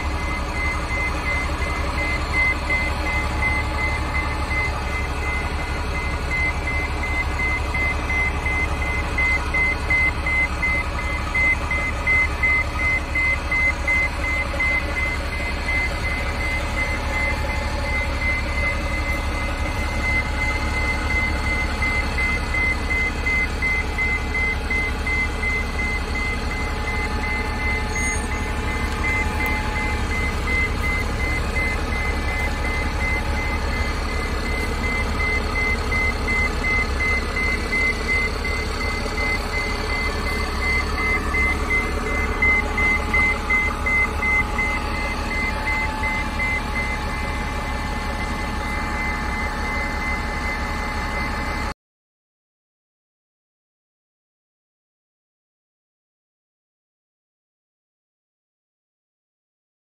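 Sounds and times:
bus engine running: 0.0 - 51.7
reverse alarm beeping: 0.0 - 51.7.

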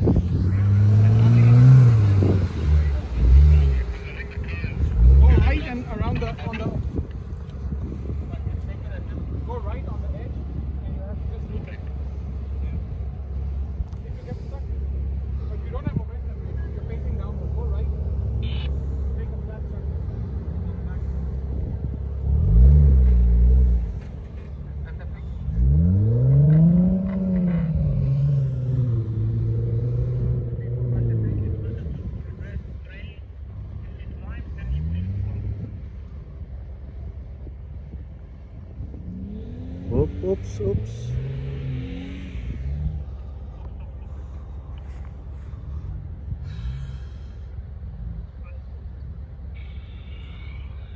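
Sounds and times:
car engine revving: 0.0 - 8.7, 12.6 - 32.8, 37.8 - 48.7.

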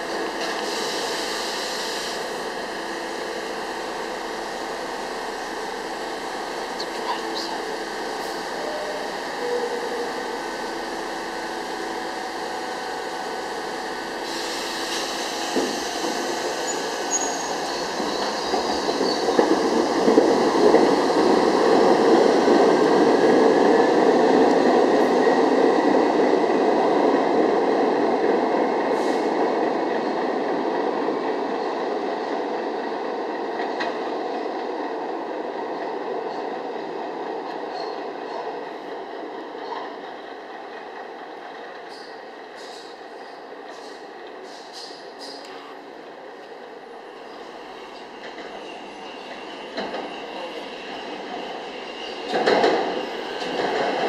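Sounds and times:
subway train rumbling past: 0.0 - 54.0.

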